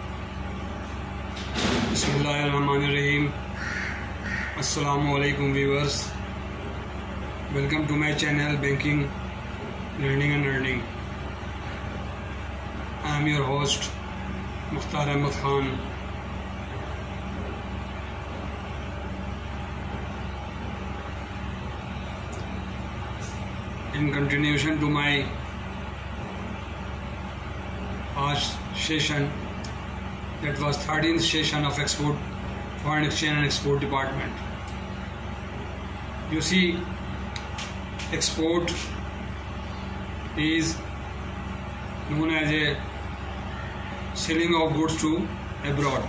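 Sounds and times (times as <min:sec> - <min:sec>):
low background rumble and hum: 0:00.0 - 0:46.0.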